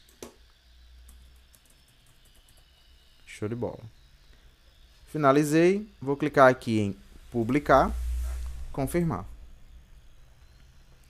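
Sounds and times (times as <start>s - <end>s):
low steady hum: 0.0s - 11.0s
keyboard typing: 1.1s - 2.7s.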